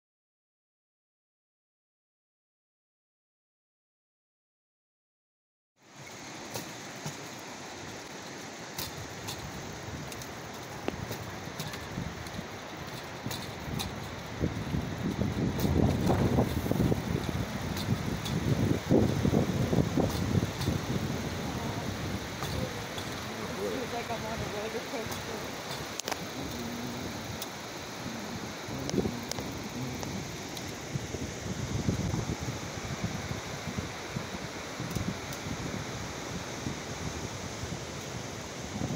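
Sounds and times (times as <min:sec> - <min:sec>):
rail bike rolling on rails: 0:06.0 - 0:38.9.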